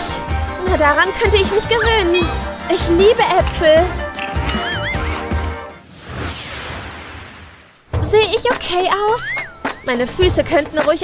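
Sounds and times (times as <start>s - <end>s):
hooves clip-clopping: 0.0s - 5.4s
background music: 0.0s - 5.9s, 8.0s - 11.0s.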